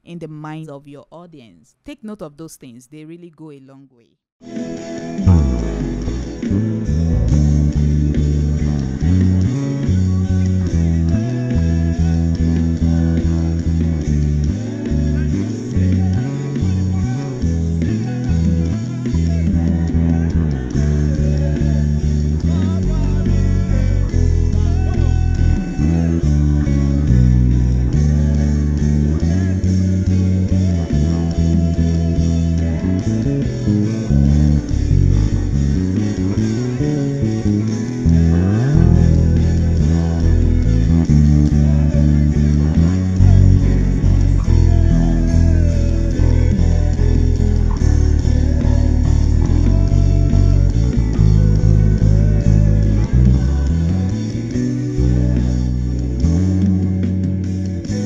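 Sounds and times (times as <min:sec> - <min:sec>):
electric bass guitar fingerstyle: 0:04.4 - 0:58.0.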